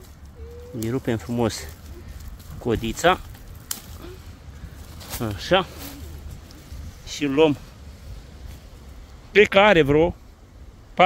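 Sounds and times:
watermelon stem snapping: 0:03.2 - 0:04.0.

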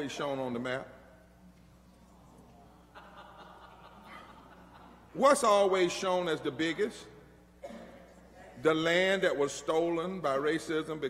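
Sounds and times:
faint low hum: 0:00.0 - 0:11.0.

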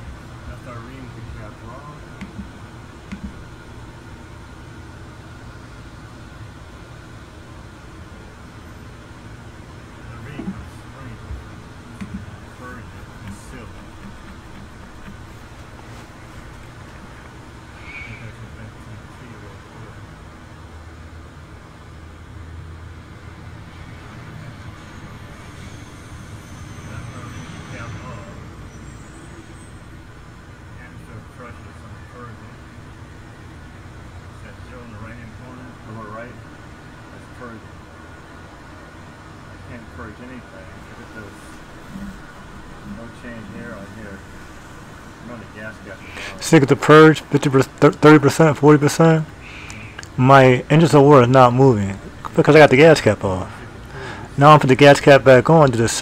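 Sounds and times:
low hum: 0:00.0 - 0:36.4
car engine idling: 0:09.9 - 0:19.4.

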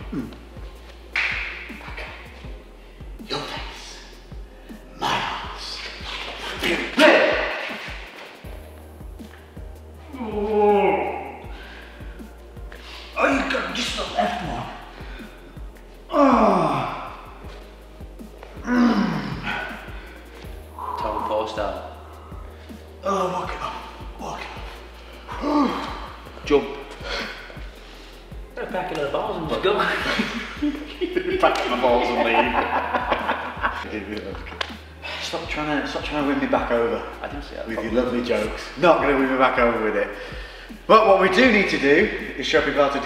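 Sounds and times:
background music: 0:00.0 - 0:43.0
man groaning in pain: 0:10.1 - 0:11.4, 0:16.1 - 0:17.4, 0:18.6 - 0:19.8, 0:25.3 - 0:26.2
men laughing: 0:29.6 - 0:34.1.

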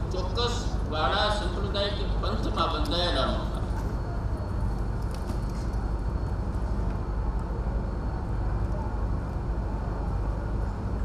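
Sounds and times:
faint high whine: 0:00.0 - 0:11.0
low rumbling background noise: 0:00.0 - 0:11.0.

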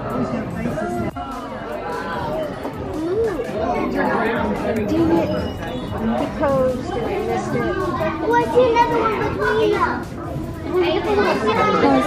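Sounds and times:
crowd chatter: 0:00.0 - 0:12.0
children's voices: 0:01.8 - 0:12.0.

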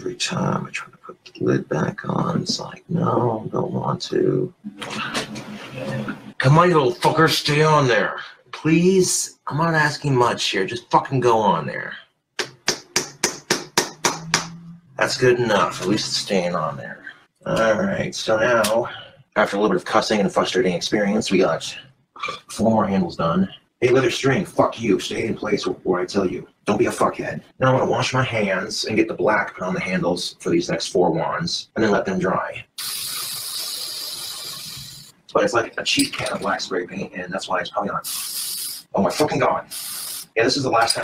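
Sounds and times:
spray paint can hissing: 0:32.8 - 0:35.1, 0:38.0 - 0:38.9, 0:39.7 - 0:40.4.

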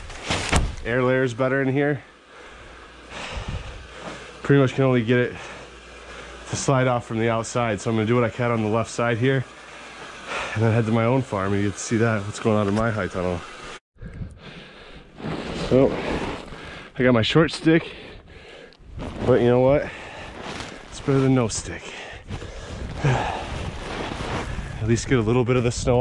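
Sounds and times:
faint steady hum: 0:00.1 - 0:10.8
man breathing hard: 0:02.1 - 0:04.4, 0:14.0 - 0:15.2, 0:17.9 - 0:18.8, 0:21.9 - 0:24.8
breathy exhale: 0:02.2 - 0:04.4
man speaking: 0:10.5 - 0:13.5, 0:17.0 - 0:18.0, 0:19.2 - 0:19.9, 0:20.9 - 0:22.2, 0:24.8 - 0:26.0.

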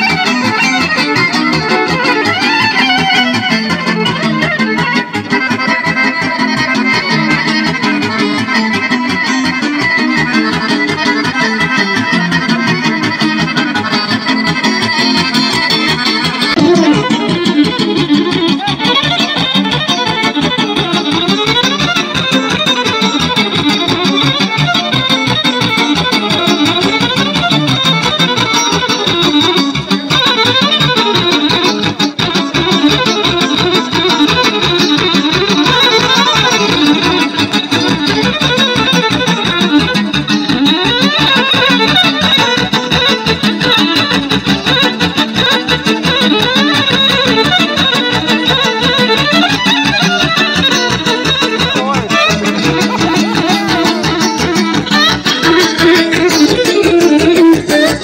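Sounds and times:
folk dance music with accordion violin: 0:00.0 - 0:58.0.

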